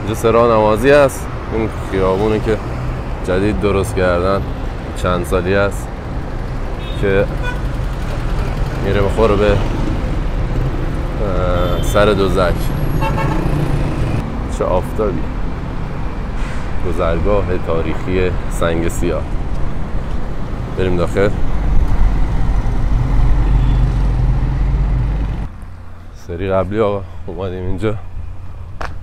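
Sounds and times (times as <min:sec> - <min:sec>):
bus passing: 0:00.0 - 0:26.2
traffic rumble: 0:00.0 - 0:29.0
motorcycle passing: 0:06.1 - 0:11.3, 0:12.2 - 0:14.3, 0:21.5 - 0:25.5.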